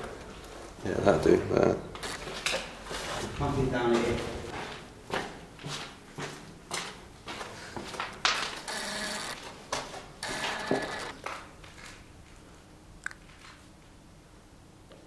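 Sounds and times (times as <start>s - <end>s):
footsteps scuffing on concrete: 2.2s - 8.6s, 9.4s - 12.0s.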